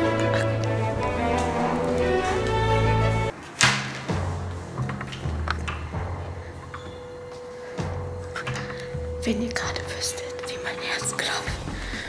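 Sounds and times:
woman whispering: 0.0 - 0.7, 9.2 - 12.0
quiet background music: 0.0 - 12.0.

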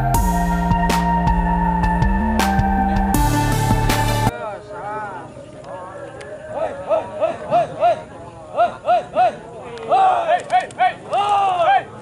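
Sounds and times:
men shouting high calls: 6.5 - 12.0.

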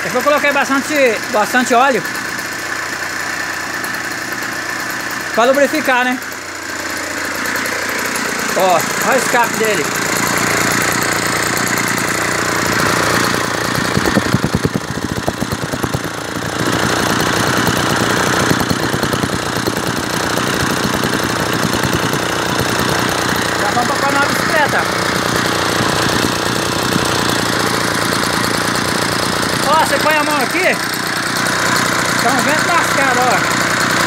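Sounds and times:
small two-stroke engine running: 0.0 - 34.0.

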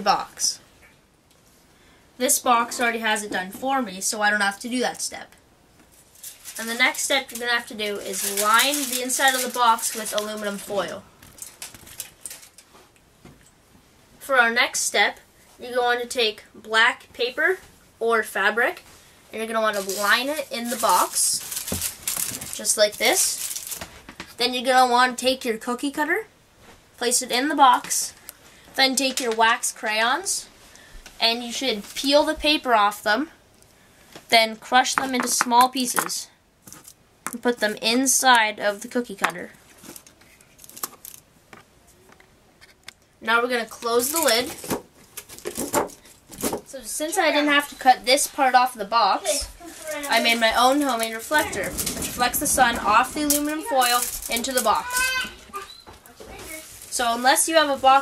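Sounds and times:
crayon pieces clicking and rattling: 6.4 - 10.6, 50.0 - 55.2.

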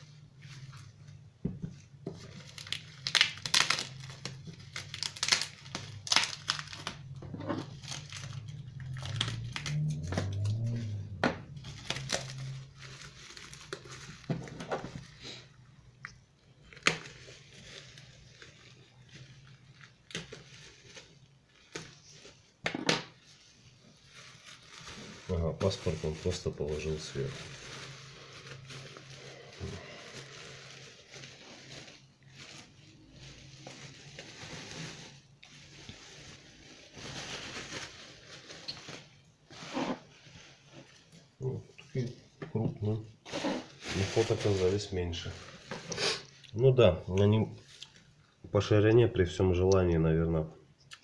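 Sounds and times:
bubble wrap crinkling: 0.0 - 50.5.

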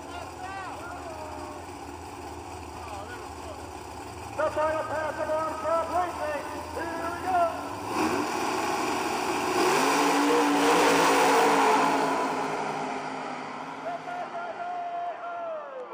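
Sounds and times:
drag racing cars accelerating: 0.0 - 15.2.

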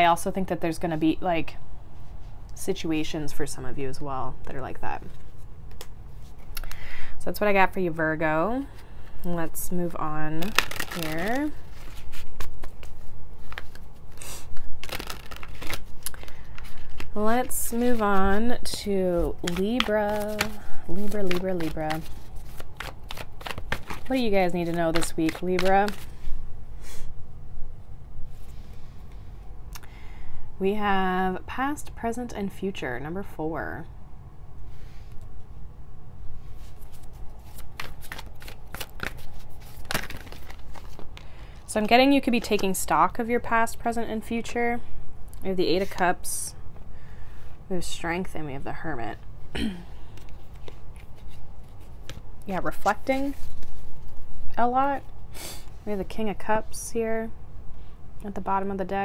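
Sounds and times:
cards clicking and slapping: 10.4 - 13.8, 14.5 - 18.5, 19.3 - 26.1, 37.0 - 41.3
cards riffling: 10.4 - 18.6, 19.2 - 26.2, 36.6 - 41.4.

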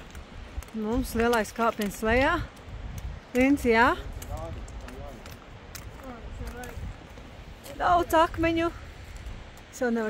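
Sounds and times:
trekking pole tips clicking on rock: 0.0 - 7.1
footsteps on rock: 0.0 - 8.2
wind rumbling on microphone: 0.0 - 10.0.

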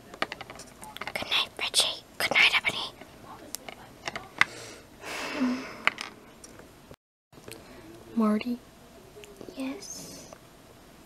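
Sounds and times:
person whispering: 1.1 - 3.0, 9.4 - 10.4.

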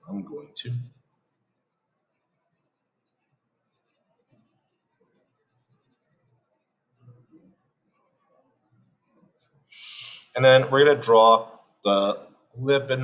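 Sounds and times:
marker scratching on paper: 0.8 - 9.7.

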